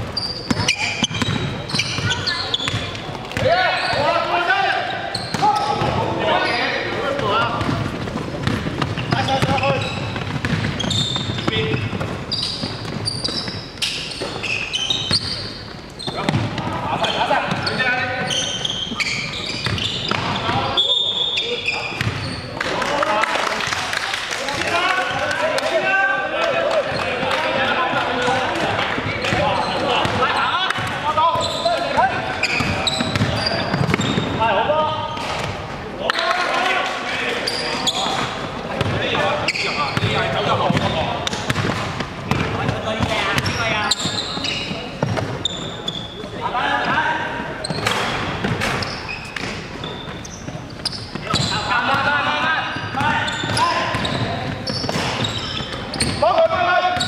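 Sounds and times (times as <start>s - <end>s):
players calling out: 0.2s - 57.0s
basketball bouncing on hardwood: 7.6s - 13.0s, 32.6s - 34.3s, 40.0s - 43.6s.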